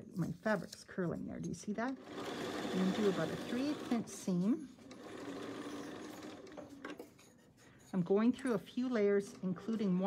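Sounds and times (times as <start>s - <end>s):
sewing machine stitching: 1.9s - 7.0s.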